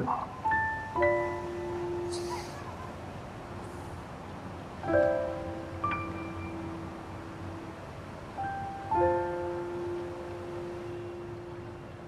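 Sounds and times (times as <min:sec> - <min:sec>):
held piano chord: 0:00.0 - 0:03.0, 0:04.8 - 0:12.0.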